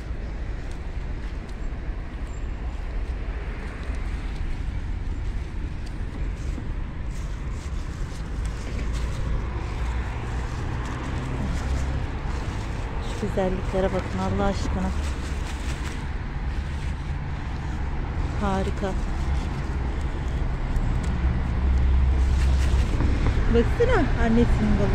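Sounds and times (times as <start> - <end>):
low outdoor rumble: 0.0 - 24.9
lettuce leaves rustling: 0.5 - 24.9.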